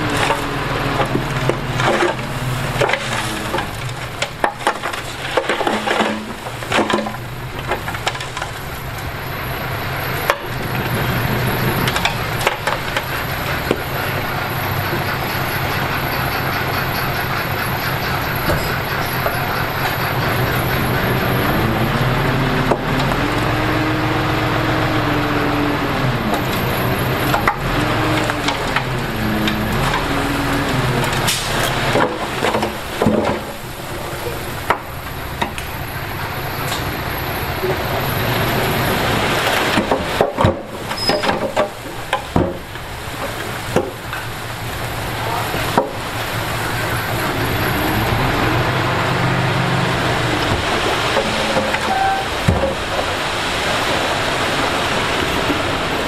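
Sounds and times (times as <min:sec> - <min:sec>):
soil and stones sliding out: 0:00.0 - 0:08.9
diesel engine under load: 0:00.0 - 0:56.0.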